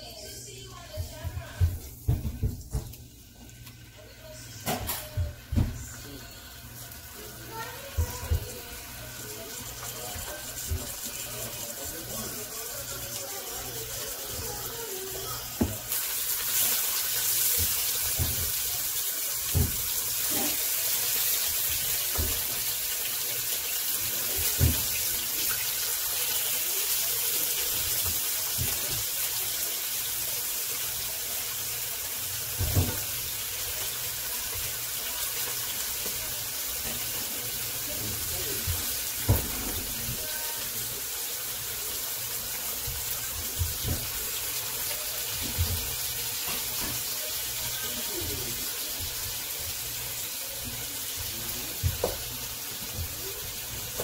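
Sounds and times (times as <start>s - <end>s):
chicken sizzling in hot oil: 3.1s - 54.0s.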